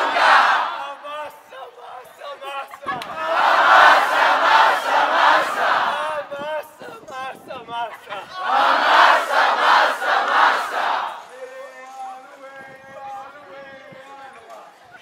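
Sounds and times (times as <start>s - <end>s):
crowd shouting together: 0.0s - 6.3s, 8.0s - 11.3s.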